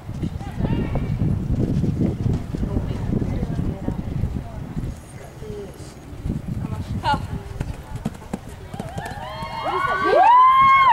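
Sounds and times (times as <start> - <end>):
horse hoofbeats on sand: 6.8 - 9.9
people whooping: 8.8 - 10.9.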